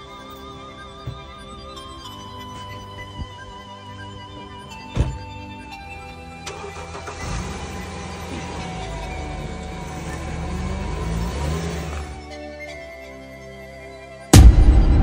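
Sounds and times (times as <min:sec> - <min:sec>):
background music: 0:00.0 - 0:15.0
car engine starting and revving: 0:06.4 - 0:12.2.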